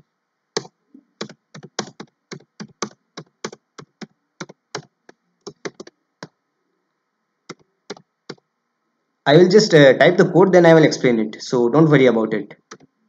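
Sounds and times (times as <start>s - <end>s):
computer keyboard typing: 0.6s - 6.0s, 7.5s - 8.4s, 12.6s - 12.9s.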